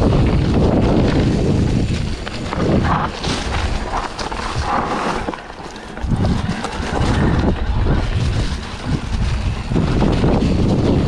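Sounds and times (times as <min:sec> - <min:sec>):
bike knocks and rattles: 0:00.0 - 0:11.0
bike tyres rolling on dirt: 0:00.0 - 0:11.0
wind buffeting microphone: 0:00.0 - 0:11.0.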